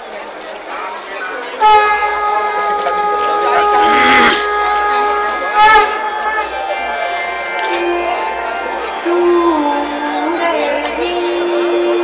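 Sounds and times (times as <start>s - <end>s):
voices: 0.0s - 12.0s
loud horn tone: 1.6s - 6.5s.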